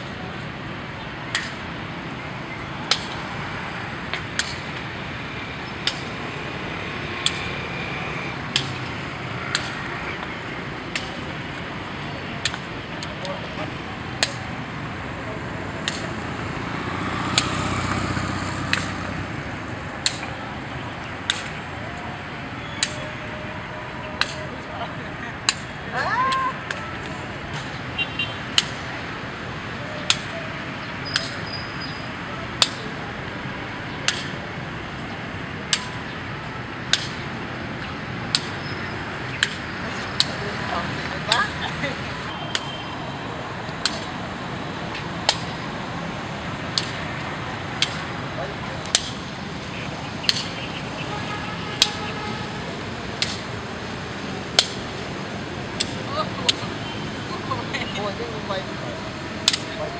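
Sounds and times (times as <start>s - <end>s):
vehicle passing: 0.0s - 25.9s, 26.6s - 59.9s
street noise: 0.0s - 59.9s.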